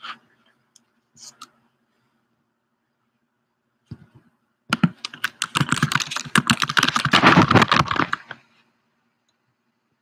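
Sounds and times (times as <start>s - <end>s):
fast typing on keyboard: 4.7s - 8.4s.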